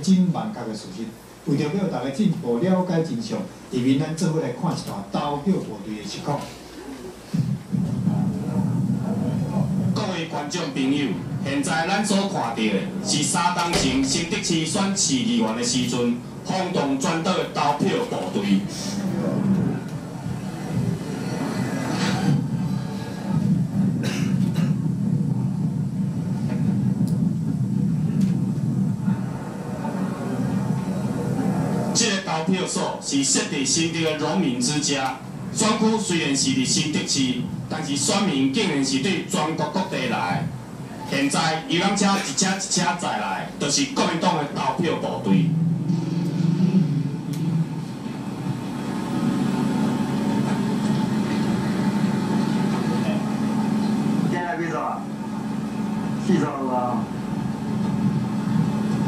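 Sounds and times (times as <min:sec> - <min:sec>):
low videotape rumble: 0:00.0 - 0:59.0
bus engine droning over loudspeakers: 0:07.8 - 0:59.0.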